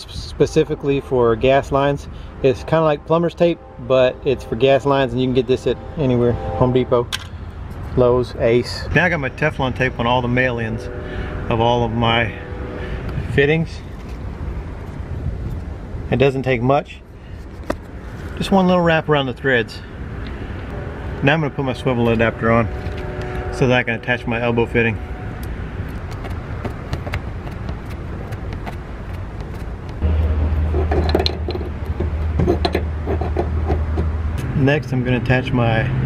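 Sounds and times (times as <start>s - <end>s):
steady low hum: 0.5s - 16.1s, 19.1s - 34.6s.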